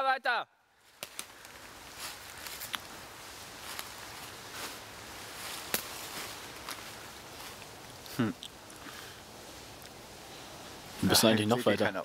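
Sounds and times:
faint outdoor hiss: 0.0 - 12.0.

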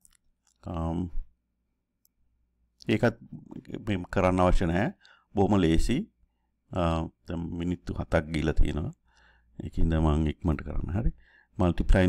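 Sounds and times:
person speaking: 0.0 - 1.4, 2.8 - 12.0.

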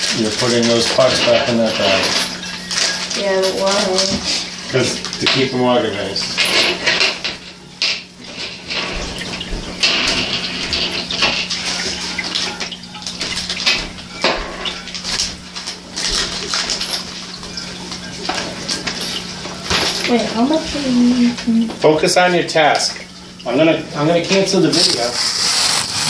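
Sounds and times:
plastic bags rustling: 0.0 - 21.6, 22.9 - 26.0.

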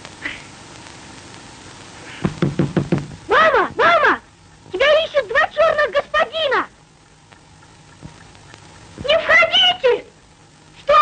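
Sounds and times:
quick knocks: 2.2 - 3.2.

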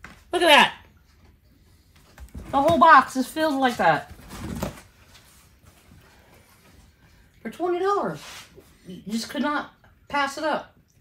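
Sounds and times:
cardboard box and produce rustling: 4.0 - 6.0.

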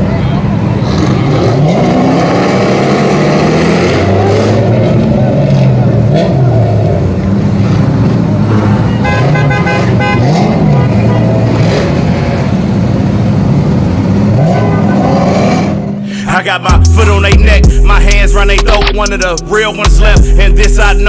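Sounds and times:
car engines revving: 0.0 - 21.0
car horn honks: 8.6 - 11.6, 14.4 - 15.2.

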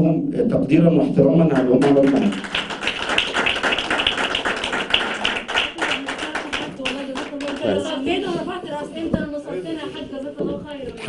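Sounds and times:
people clapping: 1.5 - 8.2.

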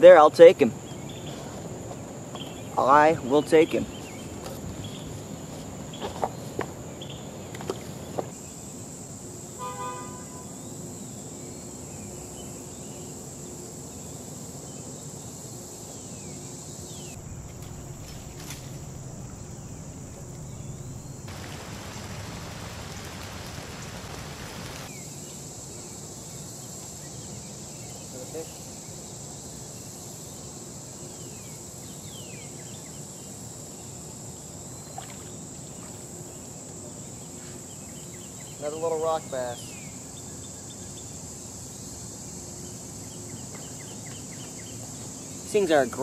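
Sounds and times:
high insect drone: 0.0 - 46.0
short horn toot: 9.6 - 10.5.

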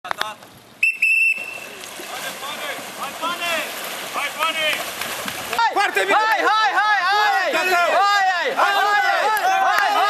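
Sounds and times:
whistle blasts: 0.8 - 1.8
people shouting: 5.5 - 10.0.

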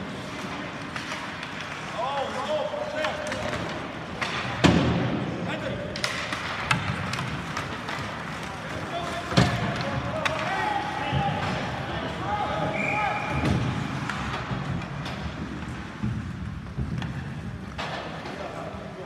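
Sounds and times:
puck and sticks cracking on boards: 0.5 - 5.1, 5.9 - 10.8.

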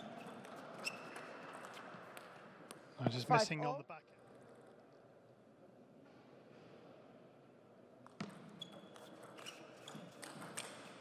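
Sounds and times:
ping pong ball hits and bounces: 0.1 - 2.8, 8.0 - 11.0.

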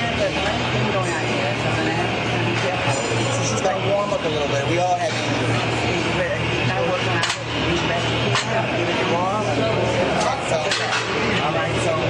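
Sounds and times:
voices: 0.0 - 12.0.

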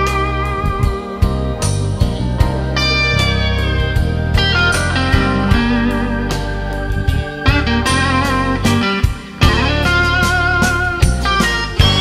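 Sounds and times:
bass and drums: 0.0 - 12.0
electric blues guitar solo: 0.0 - 12.0.

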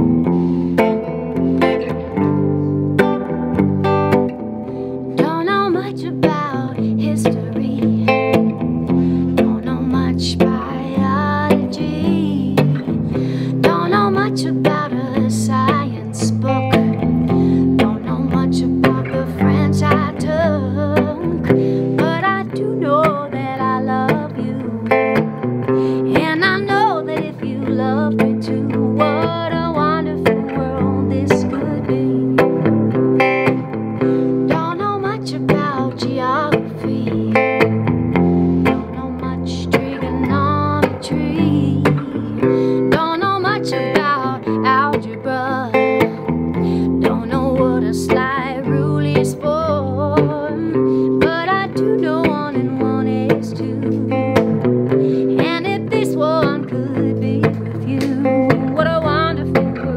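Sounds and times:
electric guitar funky strumming: 0.0 - 59.9
woman singing: 3.0 - 59.9.

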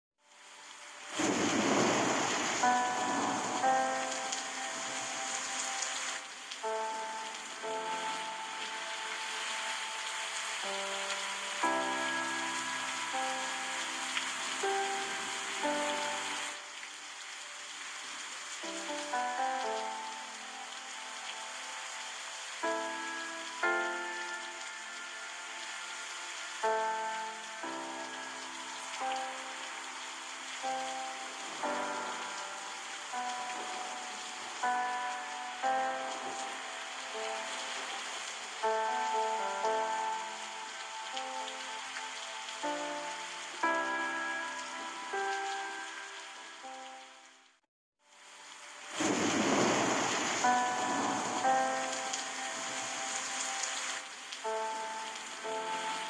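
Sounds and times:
flowing water hiss: 0.3 - 46.9, 48.2 - 56.0.

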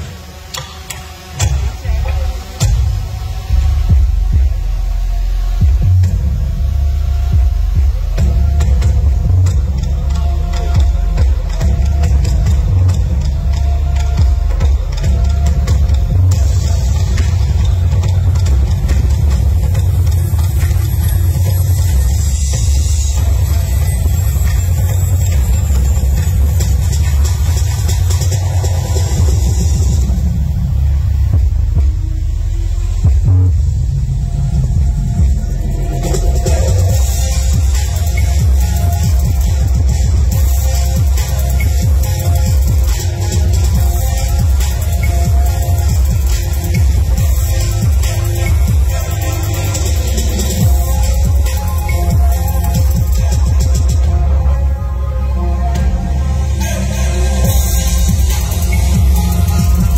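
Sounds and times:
bass-heavy music over loudspeakers: 0.0 - 59.9
deep rumble over sound system: 1.3 - 59.9.

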